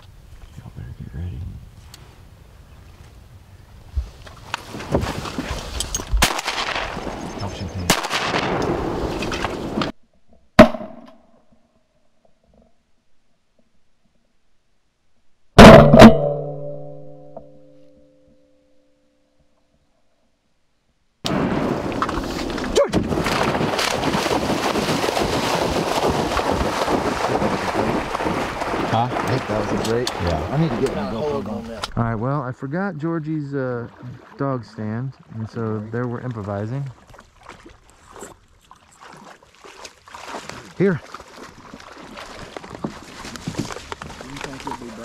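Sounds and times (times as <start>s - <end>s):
wind and marsh background noise: 0.0s - 10.0s, 20.4s - 45.0s
shotgun shots: 6.2s - 9.9s, 10.6s - 11.1s, 15.6s - 16.5s.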